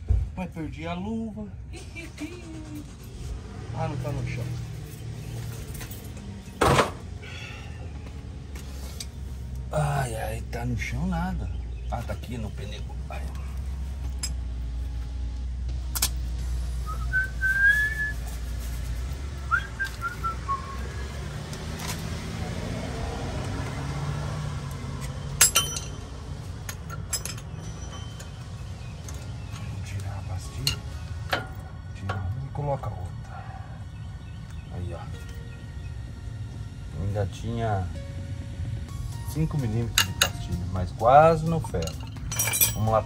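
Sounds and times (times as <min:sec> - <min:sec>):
whistle-like chirps: 0:16.8 - 0:18.4, 0:19.5 - 0:21.2
metallic clinks and knocks: 0:25.0 - 0:29.8, 0:41.6 - 0:43.0.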